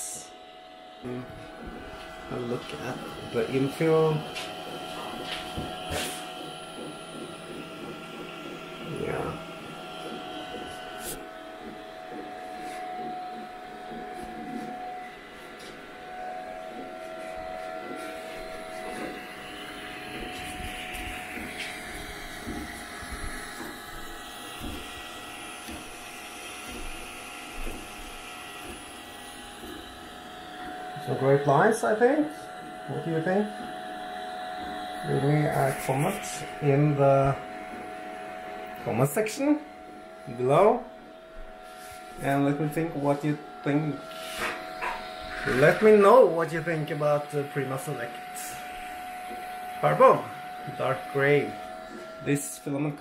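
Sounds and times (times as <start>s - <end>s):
fans whining: 0.0s - 53.0s
stepper motors humming: 0.0s - 53.0s.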